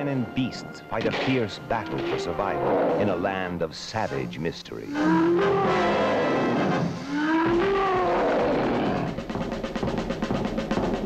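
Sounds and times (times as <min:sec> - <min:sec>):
creature roaring cries: 0:01.8 - 0:03.2, 0:04.9 - 0:09.2.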